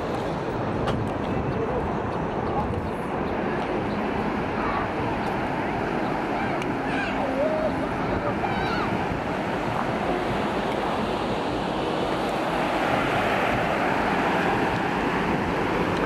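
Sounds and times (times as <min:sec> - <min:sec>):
wind on microphone: 0:00.0 - 0:16.0
surf breaking on beach: 0:04.0 - 0:16.0.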